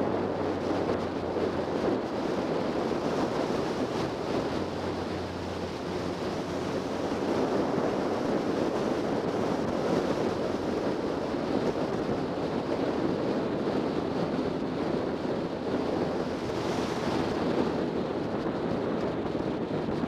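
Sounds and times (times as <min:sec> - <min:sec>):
wind rushing over microphone: 0:00.0 - 0:20.0.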